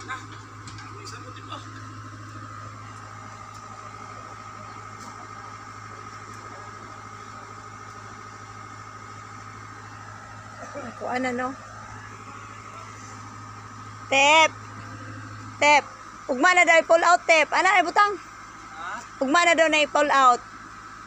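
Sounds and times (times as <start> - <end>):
excavator engine running: 0.0 - 21.0.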